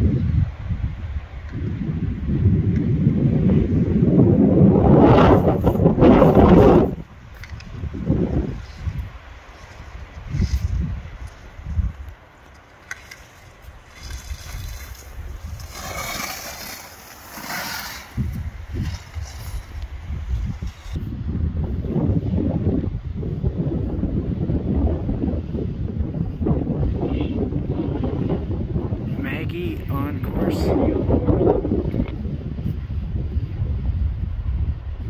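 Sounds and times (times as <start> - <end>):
wind buffeting microphone: 0.0 - 35.0
skis scraping on snow: 5.3 - 21.2.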